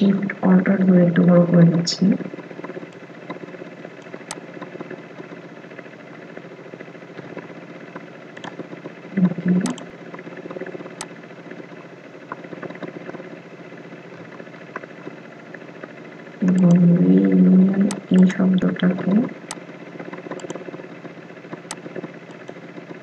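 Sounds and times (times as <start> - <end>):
steady background hum: 0.0 - 23.0
computer mouse clicks: 4.0 - 5.3, 8.4 - 8.6, 9.6 - 11.1, 17.8 - 18.3, 19.4 - 20.8, 21.5 - 23.0.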